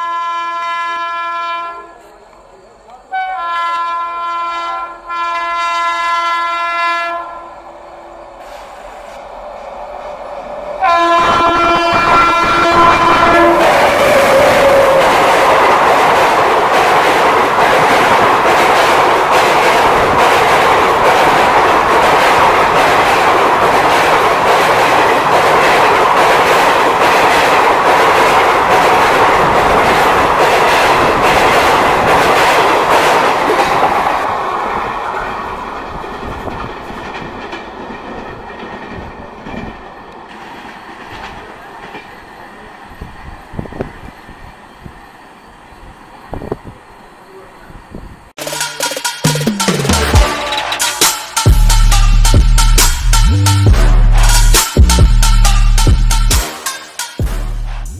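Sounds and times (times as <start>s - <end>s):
train horn: 0.0s - 2.1s, 3.1s - 7.6s, 10.8s - 15.3s, 50.0s - 57.9s.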